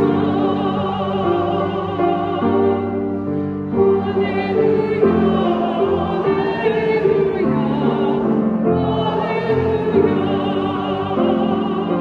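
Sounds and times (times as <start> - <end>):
choir singing a hymn: 0.0 - 12.0
grand piano accompaniment: 0.0 - 12.0.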